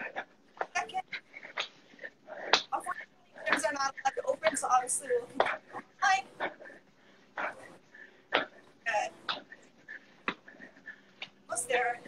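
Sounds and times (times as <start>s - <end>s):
sharp noisy breaths: 5.4s - 11.5s.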